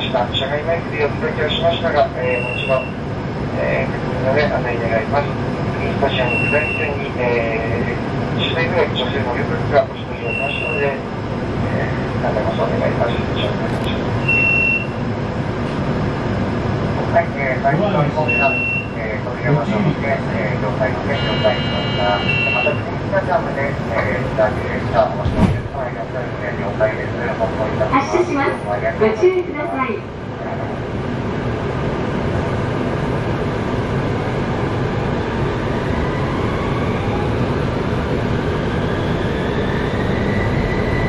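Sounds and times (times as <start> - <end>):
people talking: 0.0 - 2.9, 3.5 - 11.0, 11.6 - 14.0, 17.0 - 30.8
tram running noise: 0.0 - 41.0
short high beep: 14.2 - 15.0, 18.3 - 19.0, 21.2 - 22.8.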